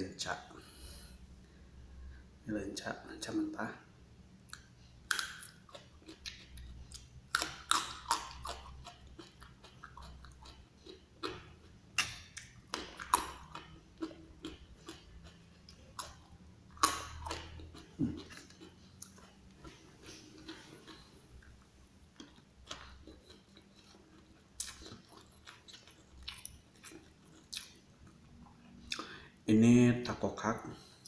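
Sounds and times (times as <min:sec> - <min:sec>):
chewing crunchy berries: 0:04.5 - 0:29.2.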